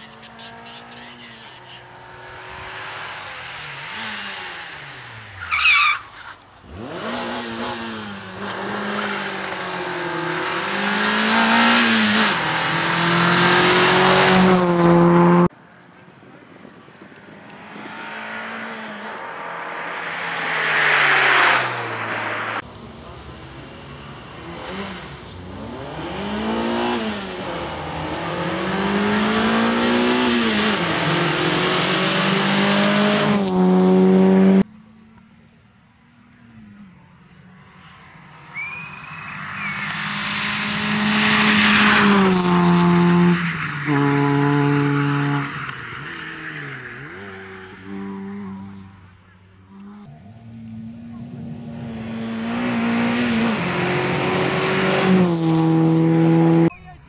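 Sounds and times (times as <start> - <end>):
rally car engine revving: 0.0 - 5.8, 6.6 - 15.6, 17.2 - 34.7, 38.5 - 56.7
high squeal: 38.4 - 40.1.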